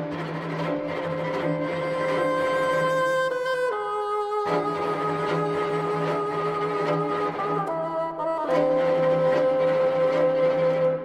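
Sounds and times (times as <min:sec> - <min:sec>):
bassoon and string quartet: 0:00.0 - 0:11.0.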